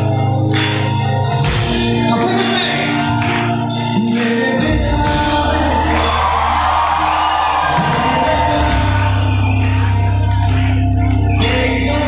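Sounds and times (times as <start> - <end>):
heavy bass: 0.0 - 12.0
live band playing: 0.0 - 12.0
person singing: 2.1 - 12.0.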